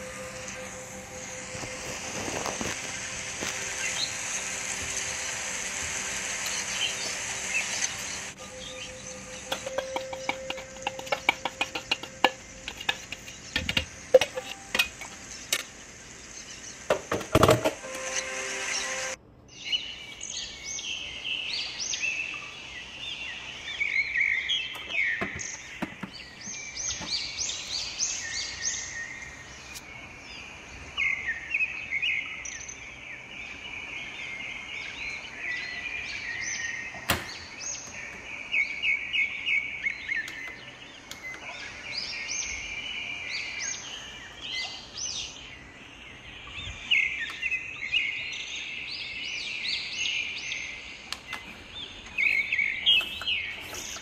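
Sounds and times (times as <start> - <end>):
small birds chirping: 0.0 - 16.9, 19.4 - 54.0.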